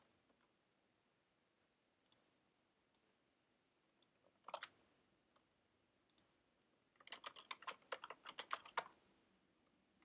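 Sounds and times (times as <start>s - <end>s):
computer keyboard typing: 4.0s - 4.8s, 7.0s - 9.0s.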